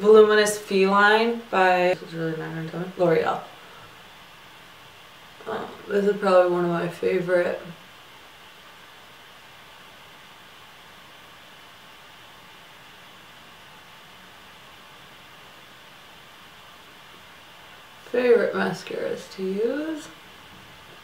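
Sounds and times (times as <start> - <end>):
faint room tone hiss: 0.0 - 21.0.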